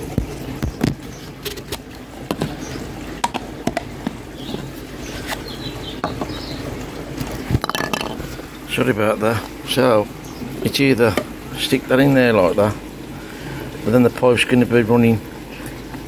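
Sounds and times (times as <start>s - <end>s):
handling clicks and knocks: 3.2s - 4.7s.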